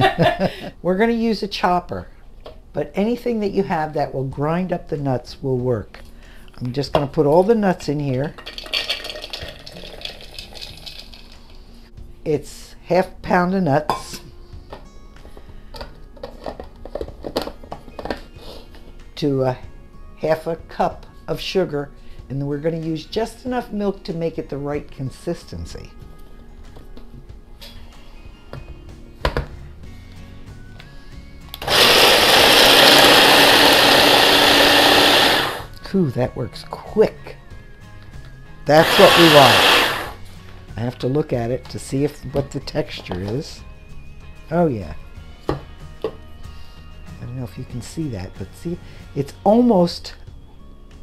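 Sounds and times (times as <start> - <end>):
blender motor grinding nuts: 31.6 - 35.7, 38.7 - 40.2.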